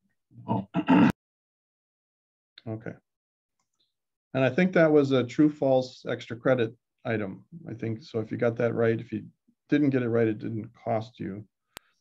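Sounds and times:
man clearing his throat: 0.4 - 1.2.

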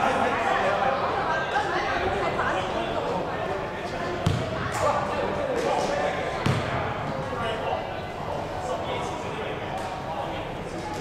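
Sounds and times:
basketball bouncing on hardwood: 4.2 - 4.5, 6.4 - 6.7.

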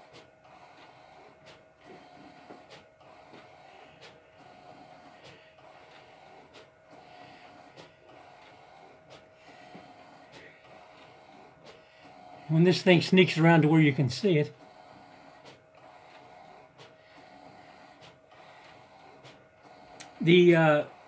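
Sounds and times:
printer whine: 0.0 - 21.0.

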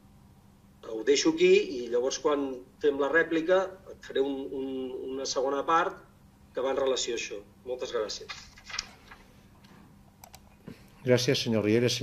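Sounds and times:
faint low hum: 0.0 - 12.0
small clicks: 10.2 - 10.4.

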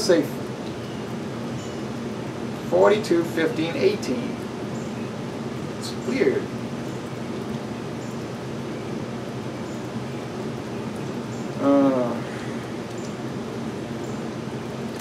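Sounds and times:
backyard ambience hum: 0.0 - 15.0.

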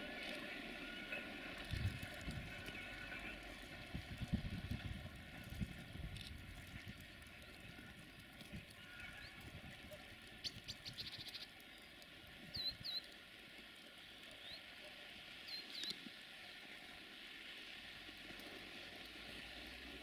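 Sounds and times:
small bird trill: 10.4 - 11.5, 12.5 - 13.0
short upswept bird chirps: 10.4 - 11.9, 12.5 - 13.1, 15.5 - 16.0.

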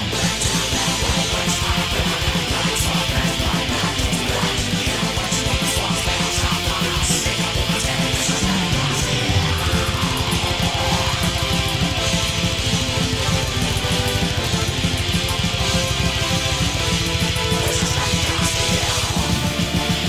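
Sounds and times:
fast low pulse: 0.0 - 20.0
heavy metal electric guitar: 0.0 - 20.0.

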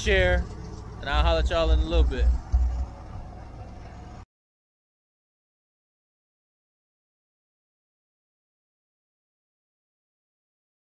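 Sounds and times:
low outdoor rumble: 0.0 - 4.2.

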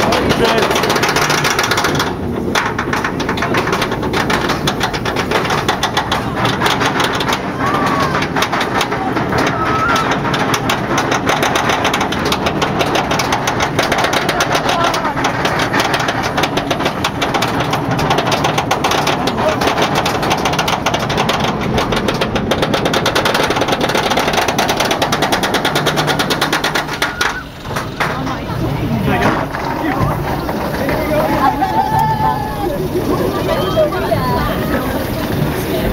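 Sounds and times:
roller coaster chain lift clatter: 0.0 - 35.9.

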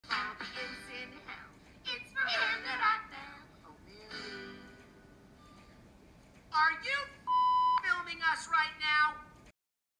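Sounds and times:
steady electronic beep: 7.3 - 7.8.

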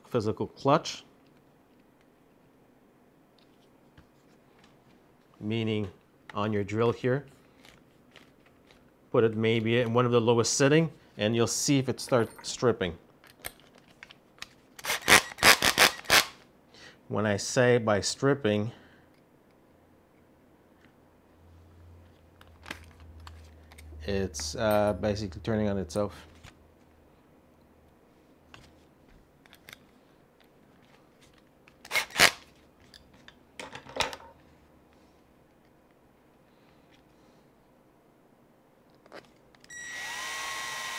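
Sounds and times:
cordless drill driving screw: 14.8 - 16.3, 31.9 - 32.4, 39.7 - 40.9
cordless drill driving screws: 39.7 - 40.9.

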